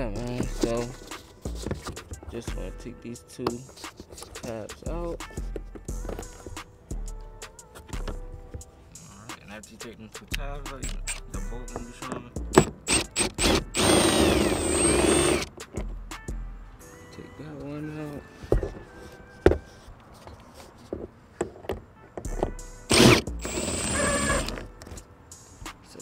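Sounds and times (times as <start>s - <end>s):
background music: 0.0s - 20.8s, 21.6s - 26.0s
power driver running: 12.9s - 15.4s, 22.9s - 24.6s.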